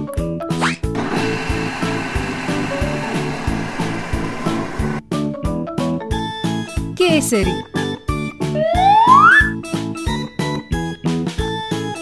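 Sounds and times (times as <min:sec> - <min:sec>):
whirring hissing machine: 0:01.0 - 0:05.0.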